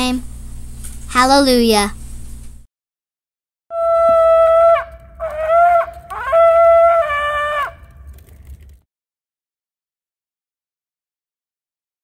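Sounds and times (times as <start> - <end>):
shofar blasts: 3.7 - 8.1.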